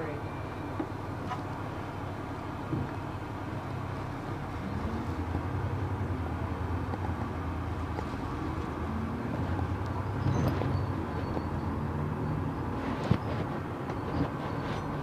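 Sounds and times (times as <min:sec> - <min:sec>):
bus engine running: 0:00.0 - 0:15.0
road and tyre noise: 0:00.0 - 0:15.0.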